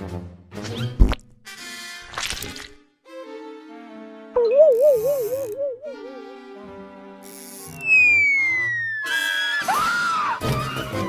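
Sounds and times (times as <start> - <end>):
cartoon orchestral music: 4.3 - 7.1
whistle sliding down in pitch: 7.8 - 10.1.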